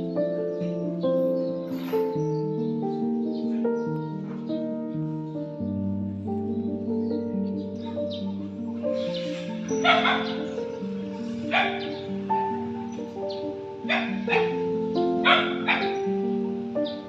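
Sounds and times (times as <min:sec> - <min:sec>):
background music: 0:00.0 - 0:17.0
dog barking: 0:09.7 - 0:10.6, 0:11.4 - 0:12.0, 0:13.8 - 0:14.6, 0:15.2 - 0:16.1.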